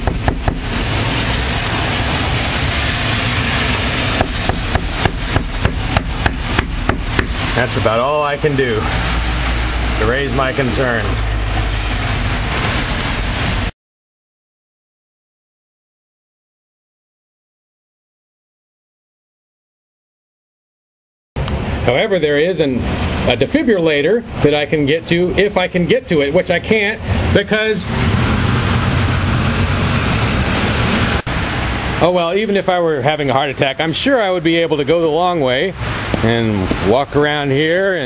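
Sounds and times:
deep rumble: 0.0s - 13.7s
rain hissing: 0.0s - 13.8s, 21.4s - 38.0s.

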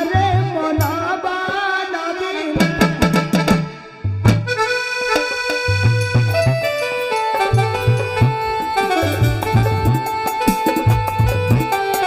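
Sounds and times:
live stage-band music: 0.0s - 12.0s.

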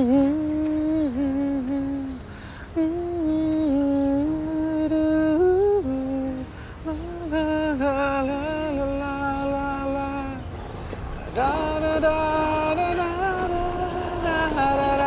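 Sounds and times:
man singing a slow ballad: 0.0s - 10.5s, 11.2s - 15.0s.

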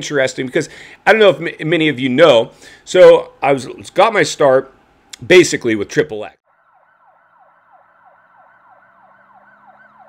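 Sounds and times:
siren-like yelping tone: 6.5s - 10.0s.

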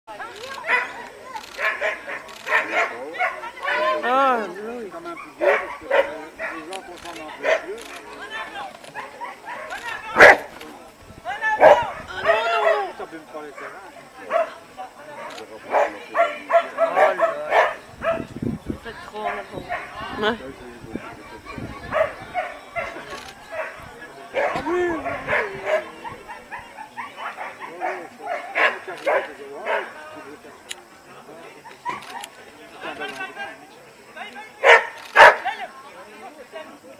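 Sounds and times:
people's voices: 0.1s - 36.9s
dog barking: 0.6s - 3.8s, 5.2s - 6.8s, 7.4s - 7.7s, 9.0s - 10.5s, 11.6s - 11.9s, 13.6s - 14.6s, 15.7s - 18.3s, 21.2s - 23.8s, 24.4s - 29.9s, 34.6s - 35.5s
dog barking and yipping: 0.6s - 3.8s, 5.2s - 7.7s, 9.0s - 10.5s, 11.6s - 12.8s, 21.2s - 23.8s, 34.6s - 35.4s.

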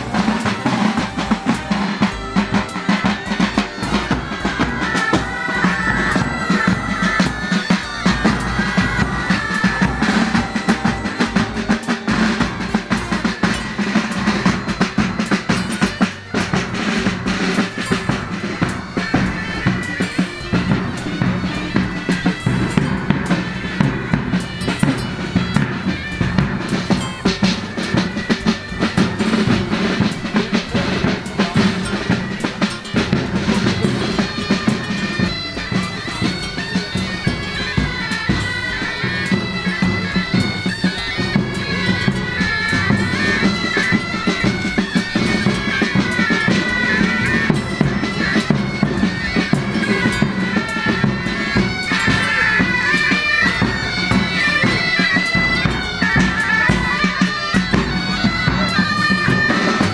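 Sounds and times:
bagpipes playing melody: 0.0s - 59.9s
side drums beating: 0.0s - 59.9s.

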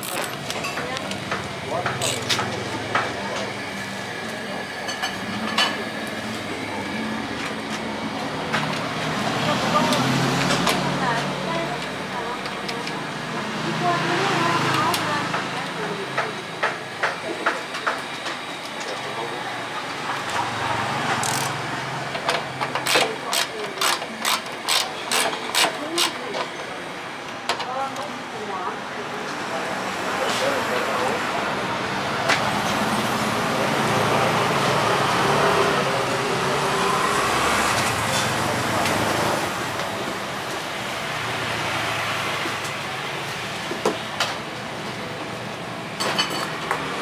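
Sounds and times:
indistinct voices: 0.0s - 45.4s.

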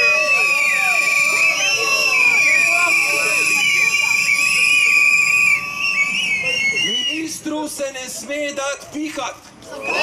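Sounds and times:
crowd whistling: 0.0s - 7.5s, 9.8s - 10.0s
man speaking over loudspeaker: 6.8s - 9.4s.

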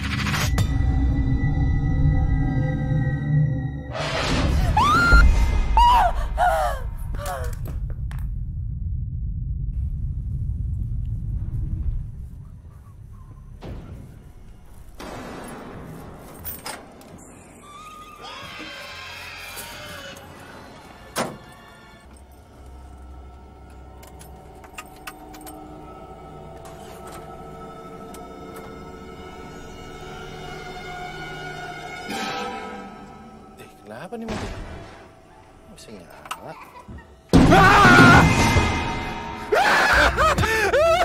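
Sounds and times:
low rumble: 0.6s - 15.0s
woman crying out: 5.8s - 7.6s
background music: 19.1s - 41.0s.

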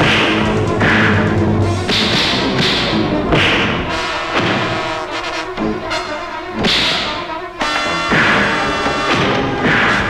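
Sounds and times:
punch thuds: 0.0s - 4.9s, 8.1s - 10.0s
background music: 0.0s - 10.0s.

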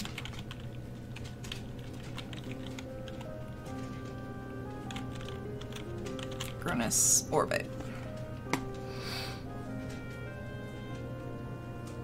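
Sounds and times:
keyboard typing: 0.0s - 6.9s
quiet background music: 0.0s - 12.0s.

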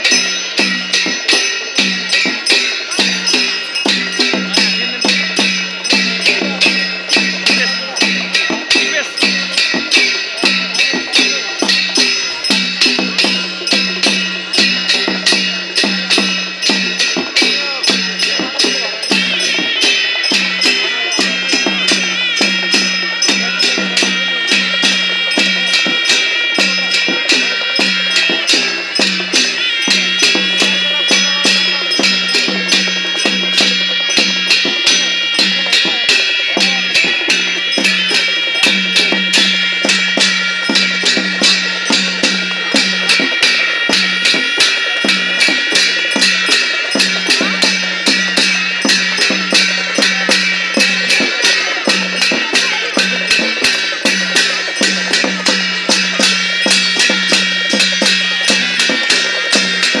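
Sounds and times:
drums beating: 0.0s - 60.0s
ringing metal cymbals: 0.0s - 60.0s.

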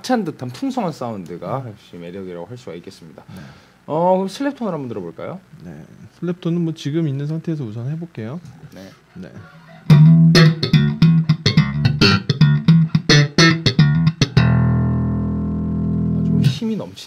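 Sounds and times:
slap bass notes: 9.8s - 16.6s.

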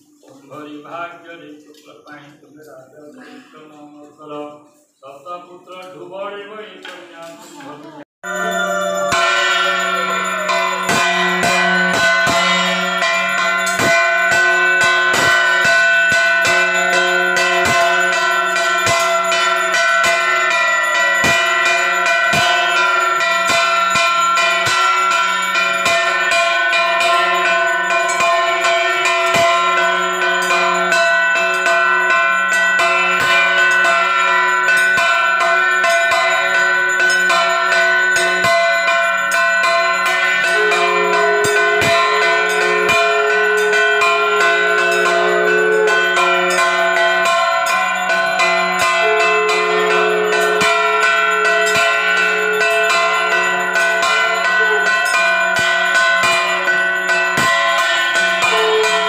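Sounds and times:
hand bell ringing: 8.2s - 59.0s.

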